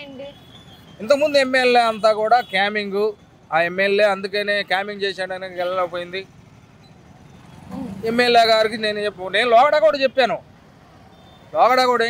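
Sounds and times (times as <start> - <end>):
faint street background noise: 0.0 - 12.0
man speaking: 1.0 - 6.3, 7.7 - 10.4, 11.6 - 12.0.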